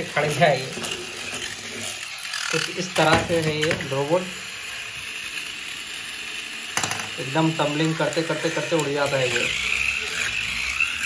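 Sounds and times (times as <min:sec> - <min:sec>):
toy robot motor whirring: 0:00.0 - 0:11.0
robot knocking on table: 0:06.8 - 0:07.1.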